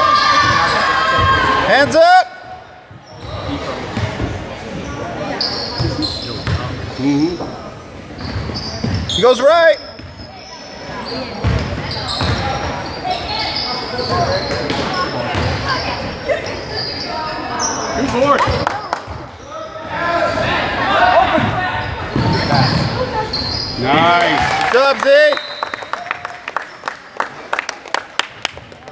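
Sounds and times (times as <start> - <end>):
people shouting and chattering: 0.0 - 27.5.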